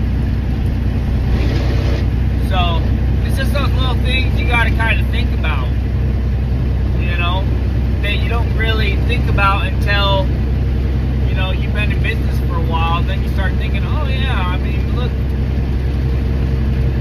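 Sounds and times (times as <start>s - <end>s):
truck engine and road noise: 0.0s - 17.0s
man speaking: 2.4s - 5.8s, 7.0s - 10.3s, 11.2s - 15.2s.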